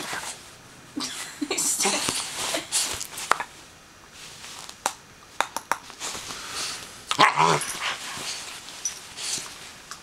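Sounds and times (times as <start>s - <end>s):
puppy growling bark: 7.1s - 7.8s.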